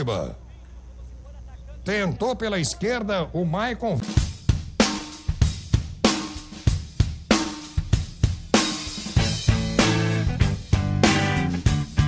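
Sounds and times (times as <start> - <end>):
drum kit playing steady beat: 3.9 - 12.0.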